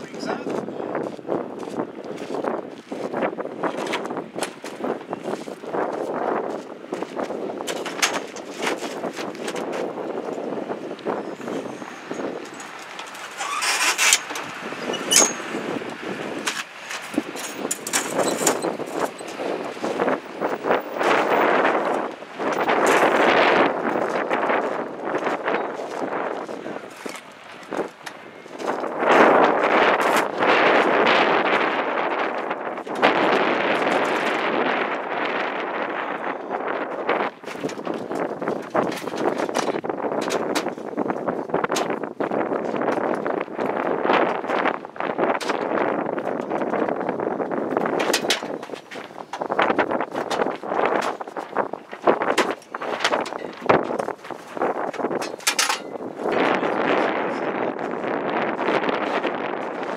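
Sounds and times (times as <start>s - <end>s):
wind buffeting microphone: 0.0s - 59.9s
folding table scraping and rattling: 7.0s - 10.6s, 11.2s - 34.9s, 44.3s - 56.9s.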